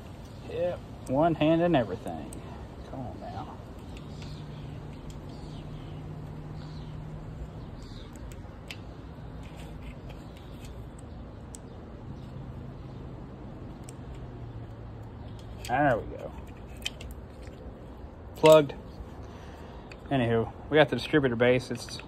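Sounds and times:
bird chirps: 1.8s - 13.8s.

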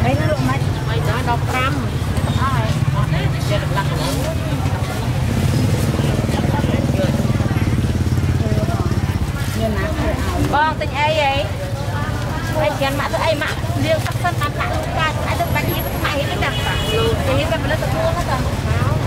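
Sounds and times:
people talking over one another: 0.0s - 19.0s.

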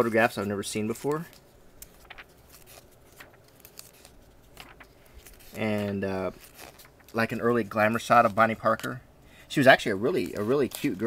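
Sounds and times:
book pages turning: 0.1s - 9.0s, 10.0s - 11.0s.

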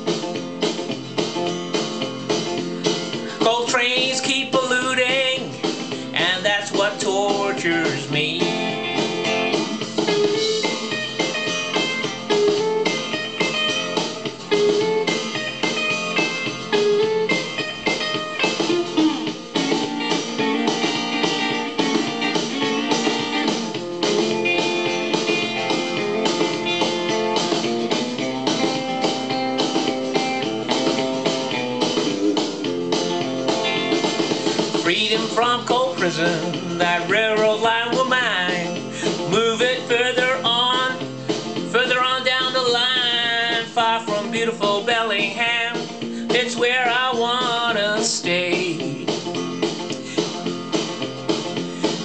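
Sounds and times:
blues guitar playing: 0.0s - 52.0s.

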